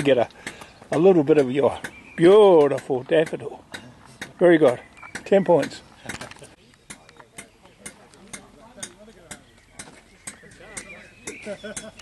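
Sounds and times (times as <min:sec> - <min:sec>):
sharp clicks: 0:01.4 - 0:12.0
people talking in background: 0:05.8 - 0:12.0.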